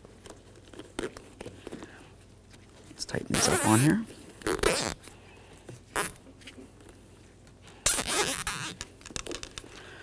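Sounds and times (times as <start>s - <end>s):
zip ties ratcheting tight: 7.9s - 8.8s.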